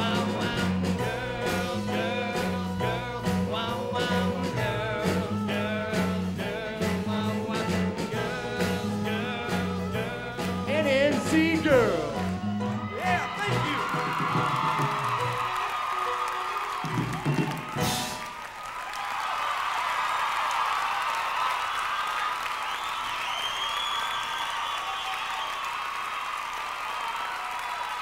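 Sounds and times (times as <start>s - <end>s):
rock band playing: 0.0s - 18.5s
audience cheering and applauding: 7.1s - 28.0s.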